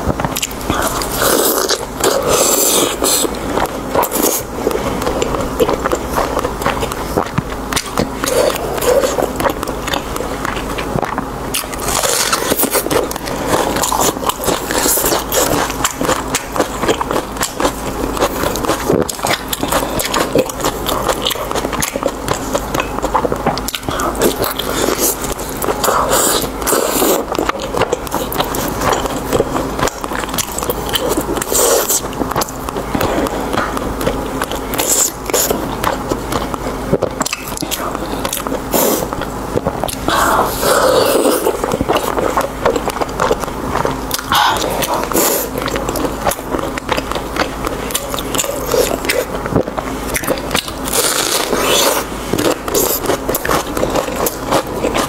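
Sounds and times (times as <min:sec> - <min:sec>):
close chewing mouth sounds: 0:00.0 - 0:55.0
steady low hum: 0:00.0 - 0:55.0.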